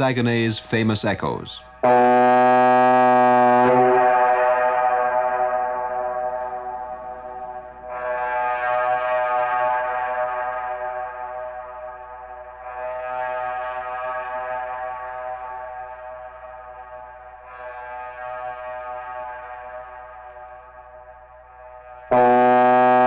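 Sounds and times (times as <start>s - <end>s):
ship whistle blast: 1.8s - 4.6s.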